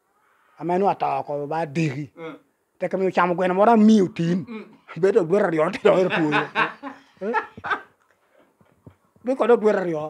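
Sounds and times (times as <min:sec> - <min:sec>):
man laughing: 0:05.7 - 0:07.9.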